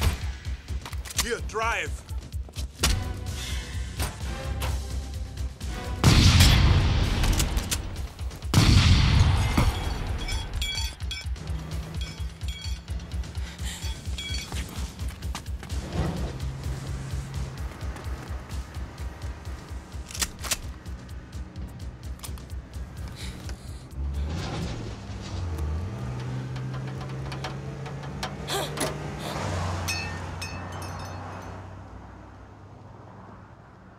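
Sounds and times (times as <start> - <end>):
pulsing film score: 0.0 - 30.0.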